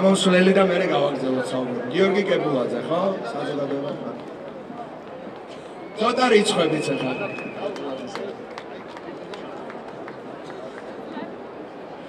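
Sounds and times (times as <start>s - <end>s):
street background noise: 0.0s - 12.0s.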